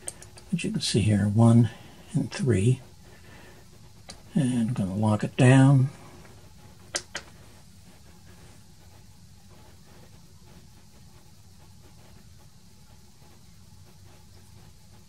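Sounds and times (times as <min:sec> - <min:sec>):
faint low hum: 0:00.0 - 0:15.0.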